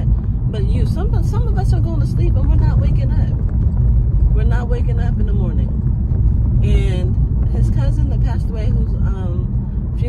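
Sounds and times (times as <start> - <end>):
woman talking: 0.0 - 3.4, 4.3 - 5.8, 6.6 - 10.0
car cabin road rumble: 0.0 - 10.0.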